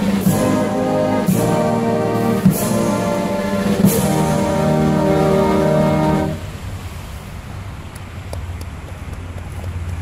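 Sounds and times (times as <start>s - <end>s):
brass band holding a chord: 0.0s - 6.6s
low outdoor rumble: 0.0s - 10.0s.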